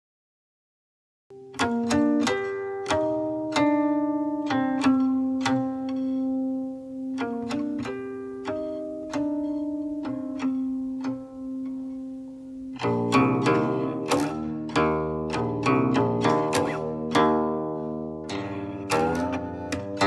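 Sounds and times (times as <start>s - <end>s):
plucked zither notes: 1.4s - 20.0s.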